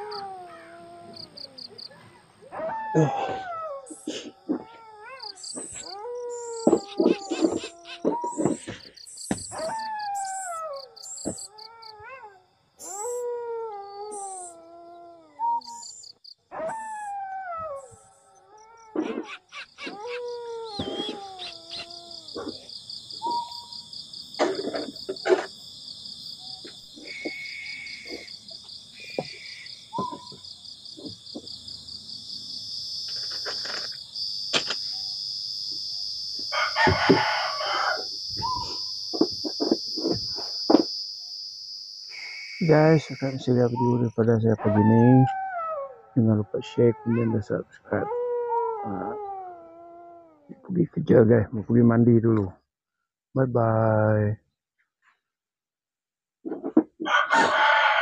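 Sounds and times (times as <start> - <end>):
animal crying: 0.0 - 15.9, 16.5 - 25.4, 36.4 - 40.9, 42.6 - 50.7
high insect chorus: 0.0 - 17.1, 17.7 - 45.3.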